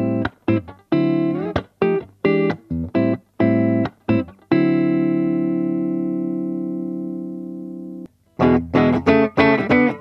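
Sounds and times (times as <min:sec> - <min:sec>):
electric guitar chord ringing: 0:03.4 - 0:10.0.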